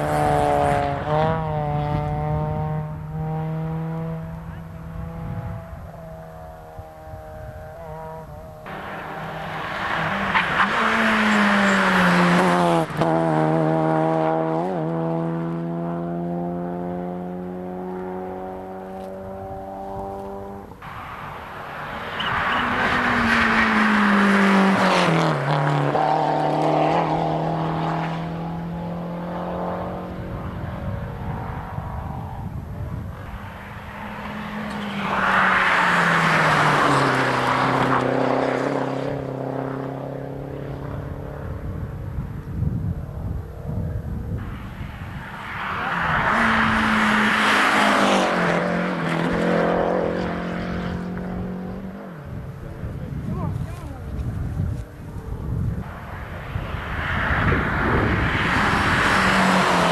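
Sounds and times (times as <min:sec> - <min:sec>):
rally cars racing past: 0:00.0 - 0:59.9.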